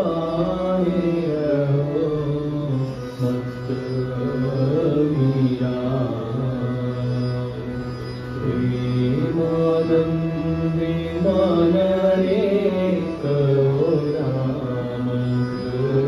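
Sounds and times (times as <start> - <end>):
harmonium held notes: 0.0 - 16.0
men singing devotional song: 8.4 - 16.0.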